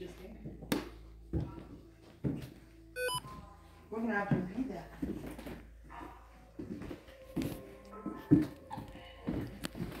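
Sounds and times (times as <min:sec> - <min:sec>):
electronic device chirp: 0:03.0 - 0:03.2.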